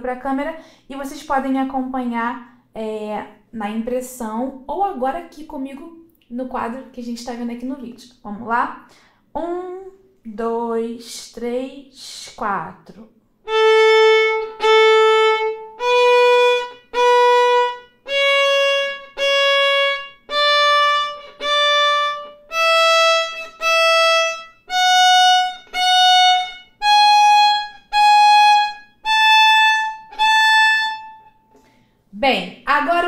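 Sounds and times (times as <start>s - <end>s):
solo violin playing a scale: 13.4s - 31.5s.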